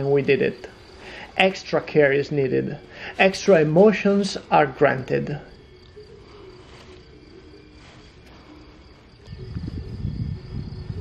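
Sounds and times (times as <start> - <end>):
faint crickets chirring: 0.0 - 11.0.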